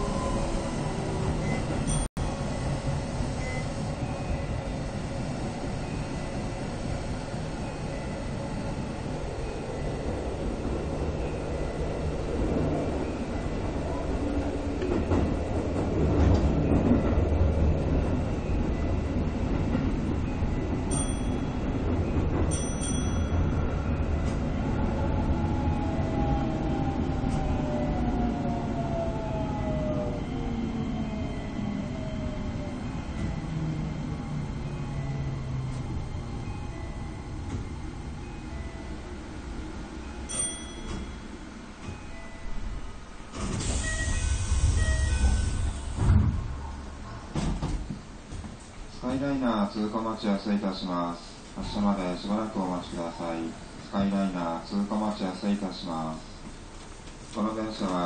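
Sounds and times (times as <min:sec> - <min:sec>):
train wheels rumbling on rails: 0:00.0 - 0:58.0.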